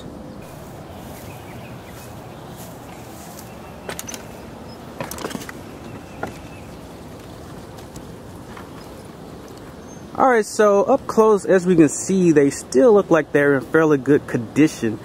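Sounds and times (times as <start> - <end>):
outdoor background: 0.0 - 15.0
wooden ladder knocks and clicks: 3.9 - 6.6.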